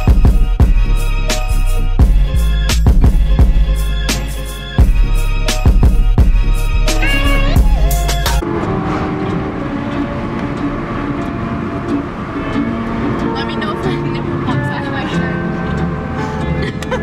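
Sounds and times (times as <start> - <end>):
bass-heavy music: 0.0 - 8.4
voices: 7.0 - 8.4.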